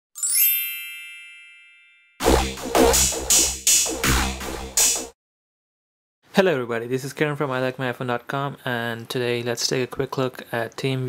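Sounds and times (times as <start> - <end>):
bright bell-like chime: 0.2 - 2.2.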